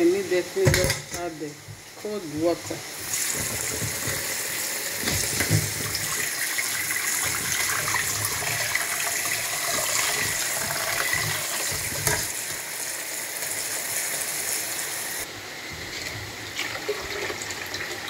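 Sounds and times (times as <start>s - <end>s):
sauce sizzling and bubbling in pan: 1.7s - 18.0s.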